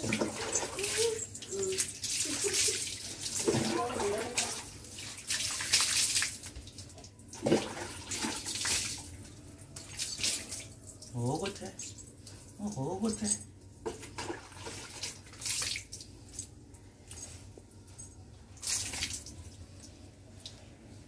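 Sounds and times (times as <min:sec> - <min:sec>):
water pouring over dog: 0:00.0 - 0:09.0
water splashing on concrete: 0:00.0 - 0:09.0.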